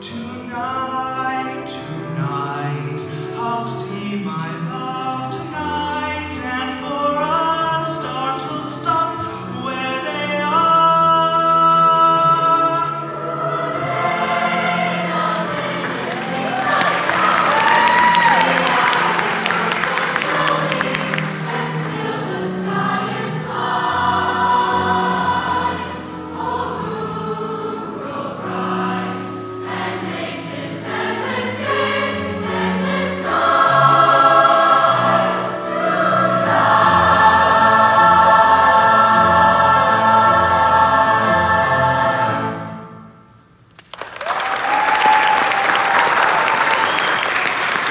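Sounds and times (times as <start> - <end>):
choir singing with piano: 0.0 - 43.3
audience applause: 15.1 - 22.5, 43.8 - 47.9.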